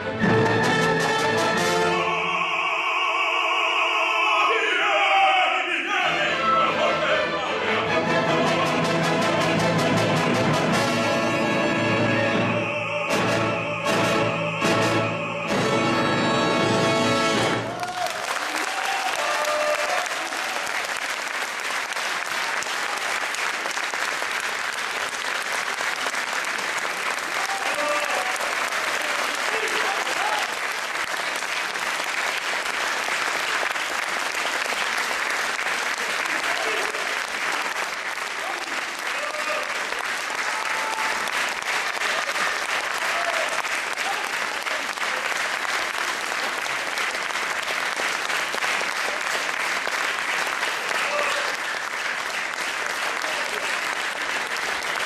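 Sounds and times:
audience applauding: 16.1s - 55.0s.

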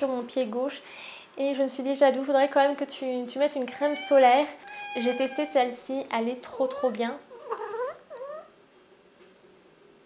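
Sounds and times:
cat meowing: 3.7s - 5.7s.

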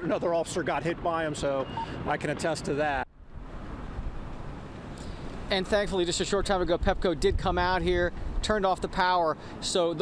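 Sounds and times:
wind rumbling on microphone: 0.2s - 9.0s
faint hiss: 3.5s - 6.0s.

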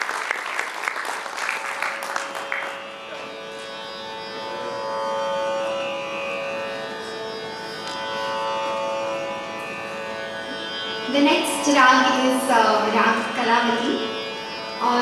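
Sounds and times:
tanpura drone: 0.0s - 15.0s.

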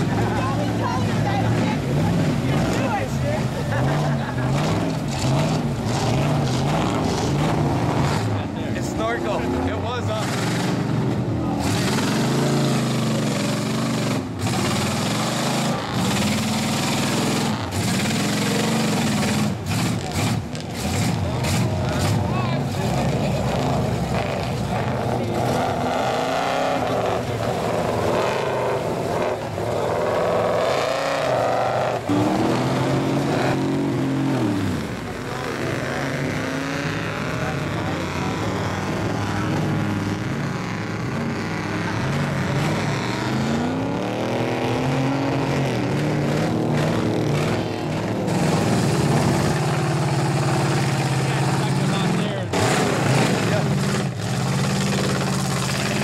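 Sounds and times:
truck engines revving: 0.0s - 56.0s
tyres spinning through mud: 11.5s - 56.0s.

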